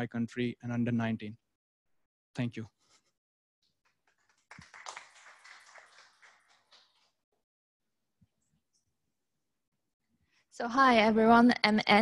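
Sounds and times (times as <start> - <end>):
light applause: 3.8 - 7.2.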